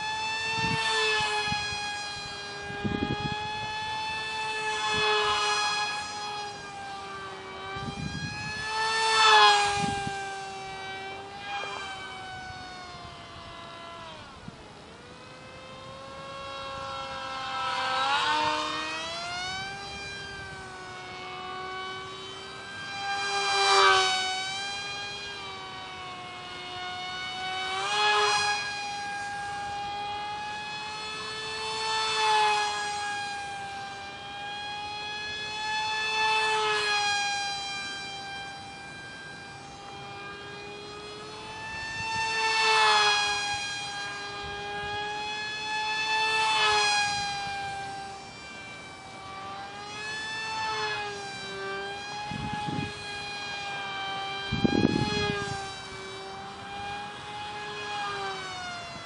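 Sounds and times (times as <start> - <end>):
small electric motor whining: 0.0 - 59.0.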